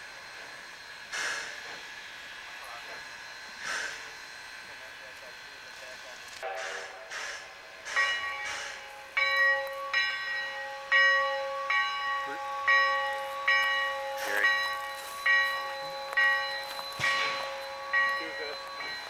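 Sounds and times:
steam locomotive bell ringing: 0:06.4 - 0:19.0.

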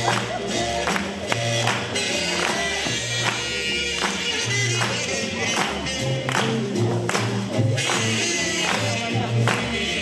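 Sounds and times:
swing jazz music: 0:00.0 - 0:10.0.

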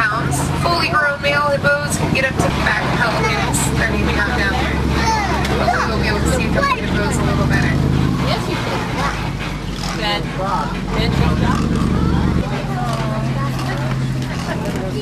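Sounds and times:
children's voices: 0:00.0 - 0:09.9, 0:10.7 - 0:15.0
passenger chatter: 0:00.0 - 0:15.0
truck engine humming: 0:00.0 - 0:15.0.

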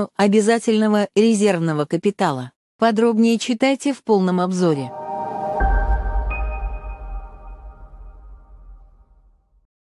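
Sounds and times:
held chord: 0:04.9 - 0:08.8
high ping: 0:04.9 - 0:09.1
deep bass hit: 0:05.2 - 0:09.4.

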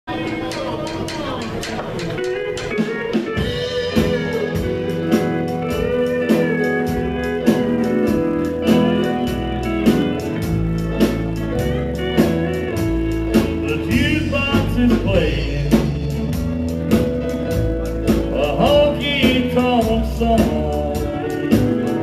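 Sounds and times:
bass: 0:00.0 - 0:22.0
keyboard: 0:00.0 - 0:22.0
drum kit steady beat: 0:00.1 - 0:22.0
electric guitar lead with bending notes: 0:00.1 - 0:22.0.

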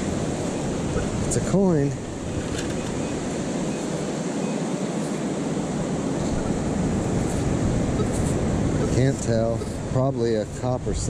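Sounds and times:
ocean surf rushing: 0:00.0 - 0:11.0
wind noise on microphone: 0:00.0 - 0:11.0.

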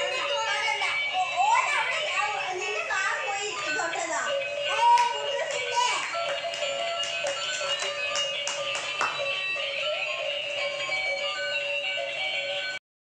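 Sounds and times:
electronic toy music tune: 0:00.0 - 0:12.8.

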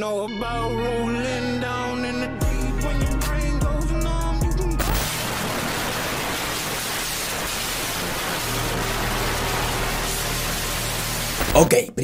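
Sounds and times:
static hiss: 0:04.8 - 0:11.7.

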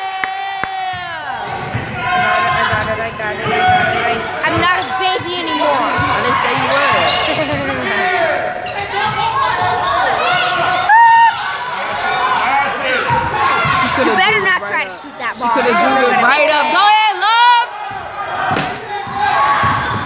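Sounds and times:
voices calling out: 0:00.6 - 0:20.0
sneakers squeaking: 0:00.9 - 0:16.8, 0:17.8 - 0:20.0.

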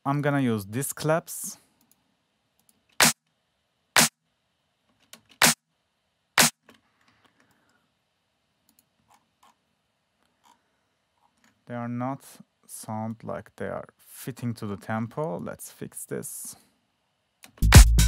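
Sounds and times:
electronic clap hits: 0:03.0 - 0:03.2, 0:04.0 - 0:04.2, 0:05.4 - 0:05.6.

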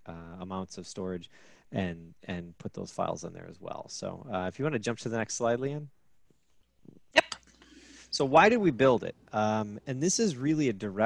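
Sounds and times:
faint microphone hiss: 0:00.0 - 0:11.0.

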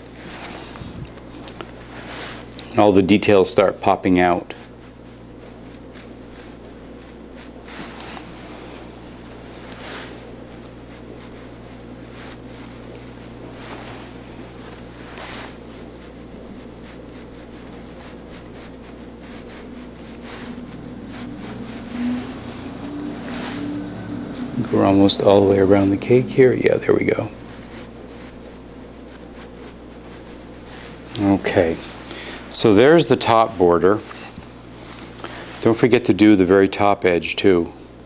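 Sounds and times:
low room hum: 0:00.0 - 0:38.0.

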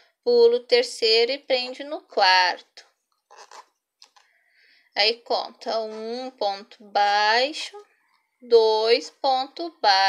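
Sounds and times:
soft rustle: 0:02.8 - 0:04.4
crochet hook scratching yarn: 0:03.3 - 0:03.8.

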